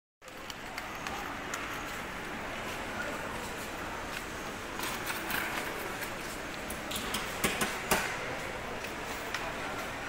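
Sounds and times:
store background hum: 0:00.2 - 0:10.0
sharp clicks and knocks: 0:06.7 - 0:08.2.

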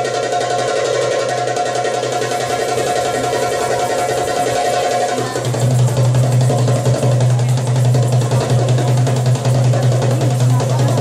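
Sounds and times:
goblet drum fast strokes: 0:00.0 - 0:11.0.

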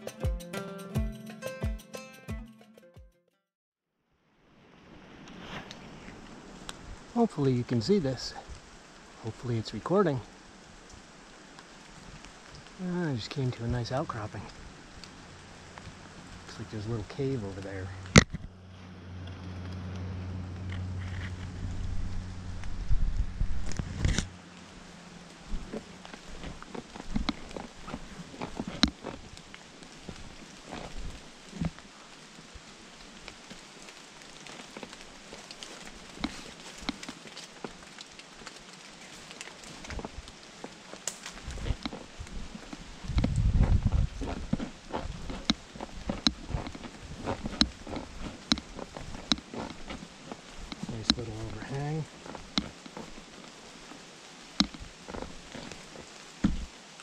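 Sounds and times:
low steady hum: 0:12.7 - 0:28.6
low rumble: 0:17.9 - 0:25.7
footsteps crunching dry leaves: 0:34.3 - 0:54.0.

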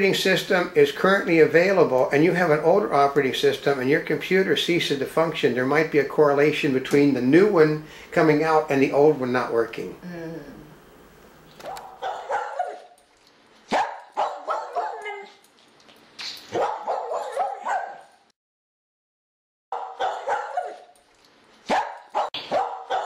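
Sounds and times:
dog barking and yipping: 0:11.6 - 0:15.5, 0:16.4 - 0:18.2, 0:19.7 - 0:21.0, 0:21.6 - 0:23.0.

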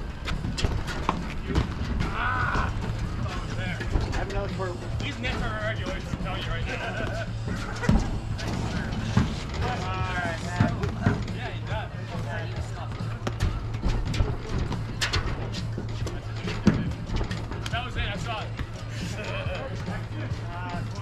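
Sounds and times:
background music: 0:00.0 - 0:21.0.

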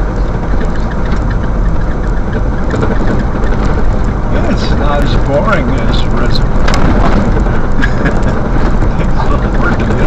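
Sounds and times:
sharp ticks: 0:00.0 - 0:10.0
tyres rumbling on gravel: 0:00.0 - 0:10.0.

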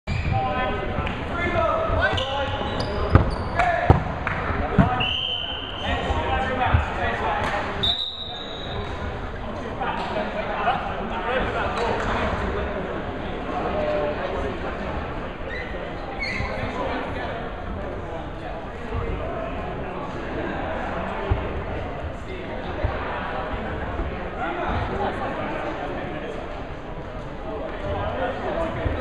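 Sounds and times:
dodgeballs smacking: 0:03.1 - 0:05.0.

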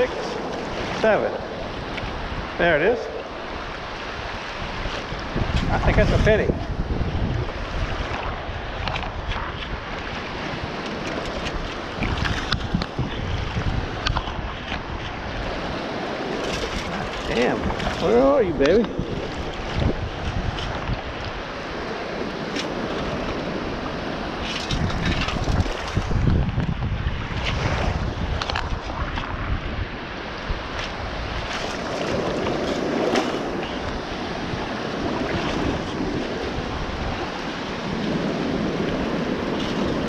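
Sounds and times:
choppy water washing: 0:00.0 - 0:40.0
wind buffeting microphone: 0:00.0 - 0:40.0.

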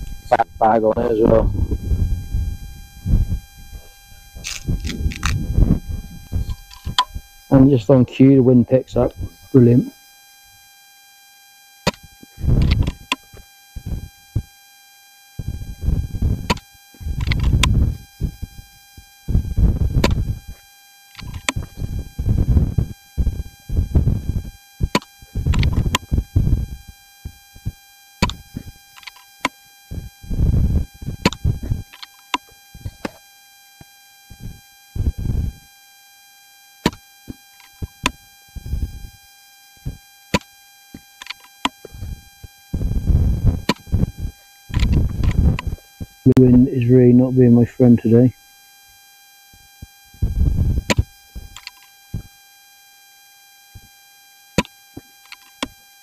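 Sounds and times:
wind buffeting microphone: 0:00.0 - 0:07.3, 0:15.4 - 0:18.6, 0:19.3 - 0:20.5, 0:42.0 - 0:45.8, 0:50.2 - 0:50.9
faint high electronic tones: 0:00.0 - 0:33.2
sharp clicks: 0:28.2 - 0:29.6.

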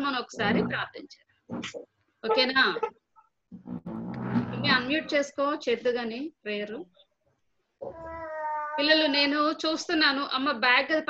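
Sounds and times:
voices talking: 0:01.5 - 0:03.0
person saying okay: 0:02.3 - 0:02.9.

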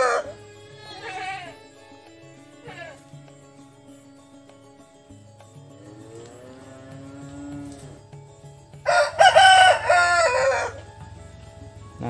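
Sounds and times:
rooster crowing: 0:00.0 - 0:00.4, 0:08.8 - 0:11.0
faint background music: 0:00.0 - 0:12.0.

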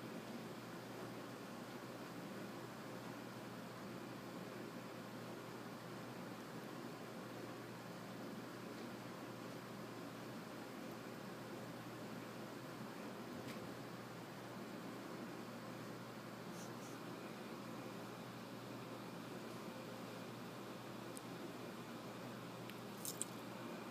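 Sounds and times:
faint room tone hiss: 0:00.0 - 0:23.9.

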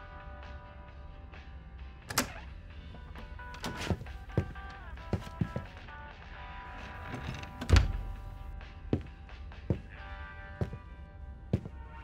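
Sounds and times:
door opening and shutting: 0:02.1 - 0:05.7, 0:06.9 - 0:08.5.

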